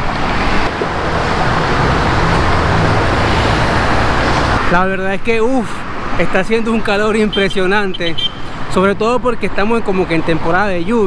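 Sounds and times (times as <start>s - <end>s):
passing cars and buses: 0.0s - 11.0s.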